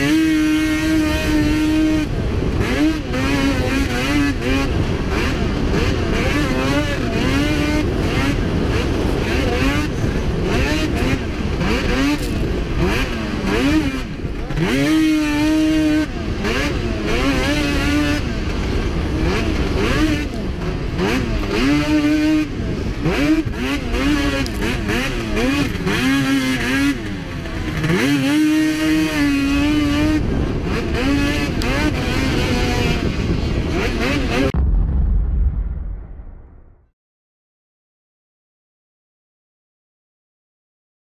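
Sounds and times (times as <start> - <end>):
snowmobile engine revving: 0.0 - 34.6.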